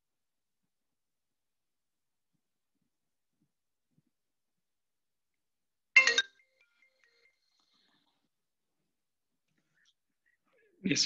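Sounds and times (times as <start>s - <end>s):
mobile phone ringtone: 6.0s - 7.5s.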